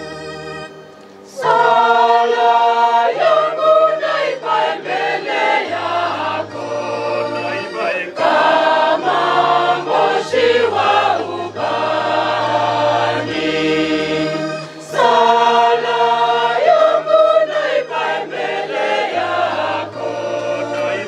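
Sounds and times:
choir singing a hymn: 0:00.0 - 0:21.0.

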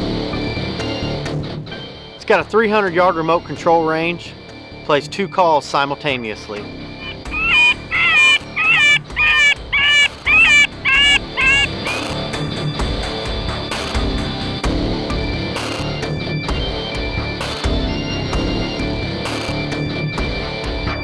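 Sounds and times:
background music: 0:00.0 - 0:21.0
shrill animal distress cries: 0:07.0 - 0:12.0.

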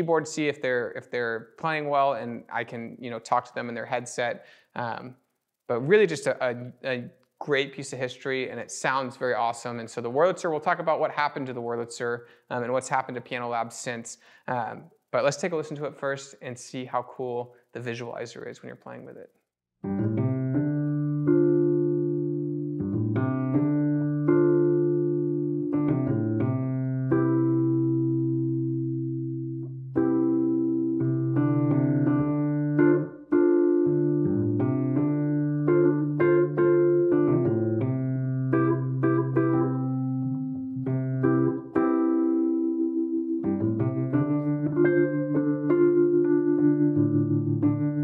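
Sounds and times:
electric piano chords: 0:19.8 - 0:48.0.

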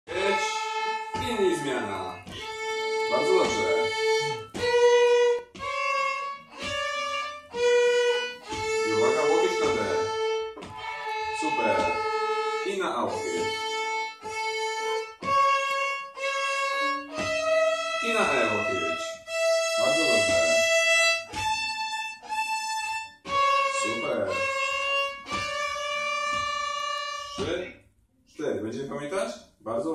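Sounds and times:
violin sustained notes: 0:00.1 - 0:27.8.

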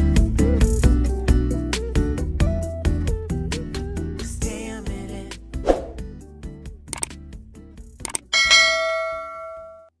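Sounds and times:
button clicks: 0:07.0 - 0:07.2
bell-like notification ding: 0:08.3 - 0:09.9.

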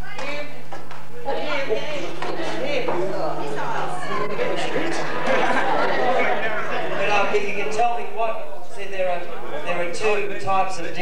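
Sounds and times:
audience talking and calling out: 0:00.0 - 0:11.0.

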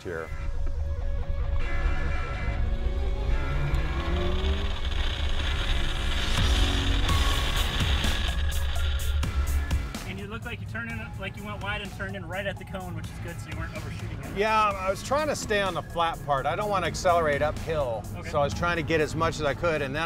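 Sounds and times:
background music: 0:00.0 - 0:20.0
car engine revving hard: 0:01.7 - 0:10.0.

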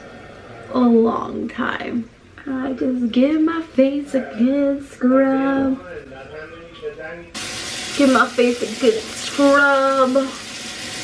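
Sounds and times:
tap water running: 0:07.4 - 0:11.0.

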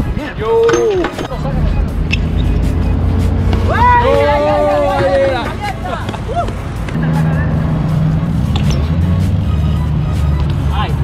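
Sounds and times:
music with deep bass line: 0:01.2 - 0:11.0.

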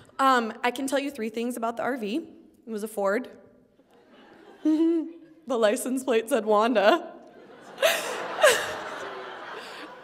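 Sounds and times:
audience laughing: 0:03.9 - 0:05.4, 0:07.3 - 0:10.0.

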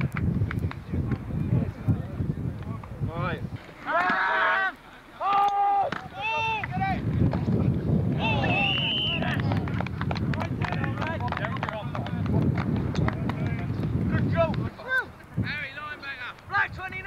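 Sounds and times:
players shouting: 0:03.7 - 0:07.1, 0:08.1 - 0:09.7.

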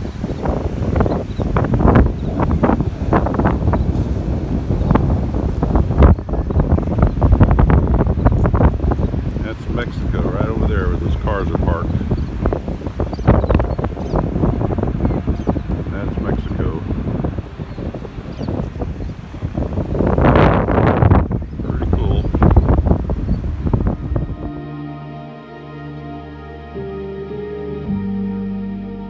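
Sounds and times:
wind buffeting microphone: 0:00.0 - 0:25.0
soft background music: 0:23.9 - 0:29.0.

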